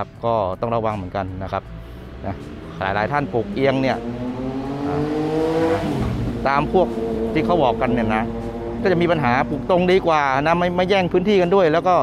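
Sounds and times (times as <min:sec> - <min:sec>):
motor vehicle accelerating: 0:01.5 - 0:12.0.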